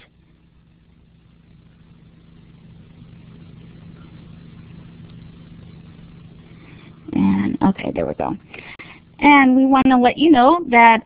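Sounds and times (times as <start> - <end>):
steady low hum with hiss: 0.0 - 11.0.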